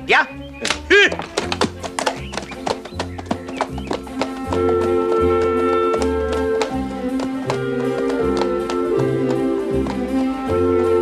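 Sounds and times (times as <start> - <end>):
horse hooves clopping on road: 0.6 - 11.0.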